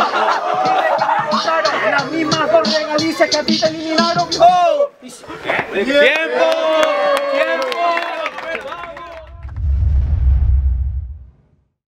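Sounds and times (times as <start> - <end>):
crowd shouting and cheering: 0.0 - 3.4, 4.2 - 9.5
people clapping: 5.5 - 9.6
deep rumbling boom: 9.2 - 11.6.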